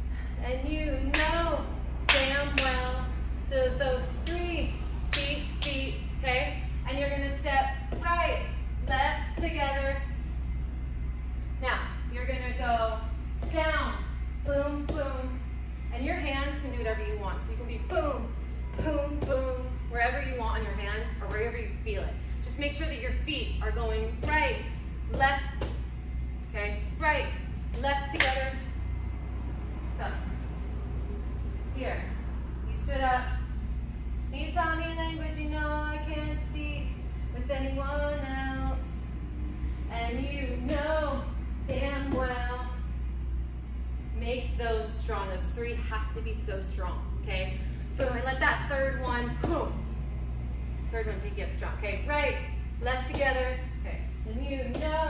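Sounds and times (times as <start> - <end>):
steady low hum: 0.0 - 55.0
sharp claps: 1.1 - 1.4, 2.1 - 2.9, 5.1 - 5.9, 28.1 - 28.5.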